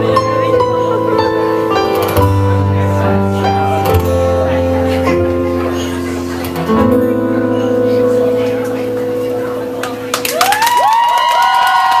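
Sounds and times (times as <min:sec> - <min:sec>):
audience clapping and cheering: 0:09.8 - 0:12.0
rising whoops: 0:10.3 - 0:12.0.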